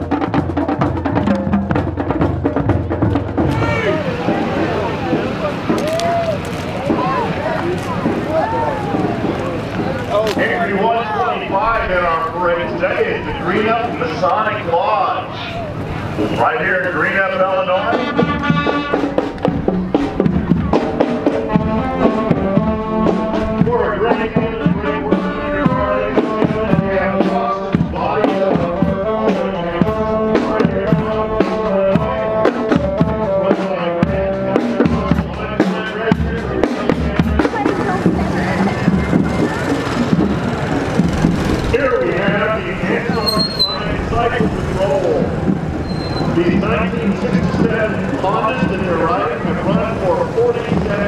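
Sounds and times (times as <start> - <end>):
drum beats: 0.0 - 51.0
wind instruments playing: 0.0 - 51.0.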